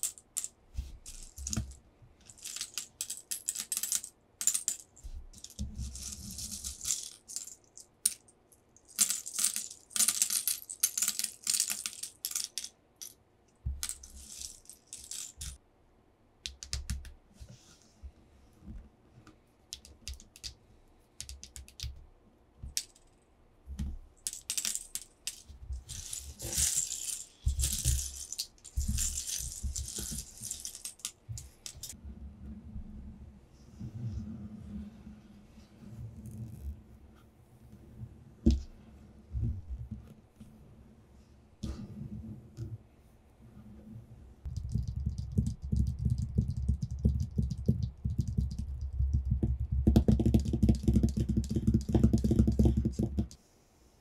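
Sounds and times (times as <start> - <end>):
plastic pieces clicking: 19.7 - 20.6, 21.2 - 22.0, 24.2 - 32.0.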